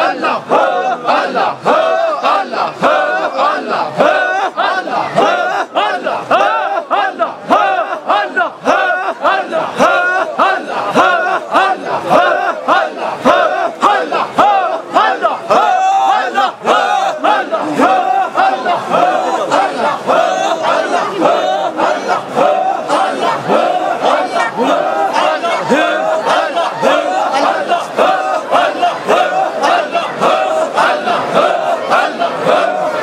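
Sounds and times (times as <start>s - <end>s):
crowd of men chanting: 0.0s - 33.0s.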